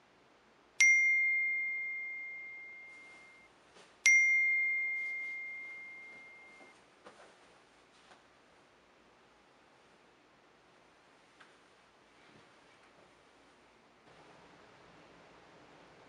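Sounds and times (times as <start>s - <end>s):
phone notification chime: 0.8s - 3.5s, 4.1s - 6.7s
bedding rustling: 4.9s - 8.3s.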